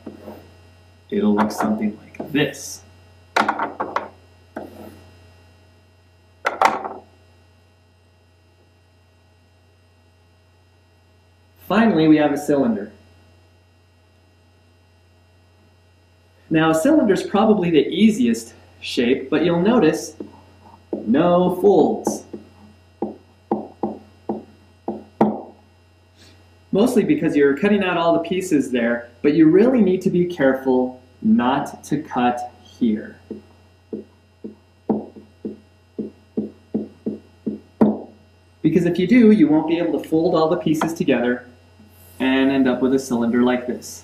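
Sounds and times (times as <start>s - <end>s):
low electrical hum: 0.0s - 44.0s
knocks and taps: 3.4s - 4.7s, 22.1s - 25.5s, 33.3s - 38.2s.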